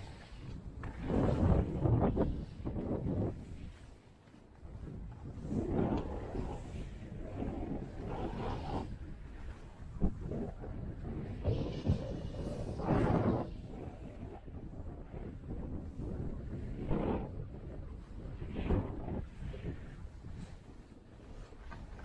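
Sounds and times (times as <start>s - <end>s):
skis scraping through snow: 0.0s - 14.4s, 15.7s - 22.0s
wind on microphone: 0.0s - 22.0s.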